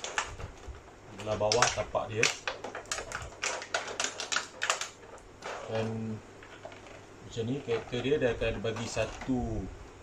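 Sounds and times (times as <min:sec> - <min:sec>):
plastic packaging crinkling: 0:00.0 - 0:09.4.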